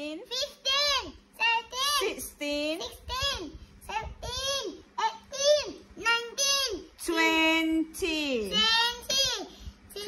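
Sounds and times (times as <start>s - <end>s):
child counting aloud: 0.2s - 2.2s, 2.8s - 7.3s, 8.3s - 10.0s.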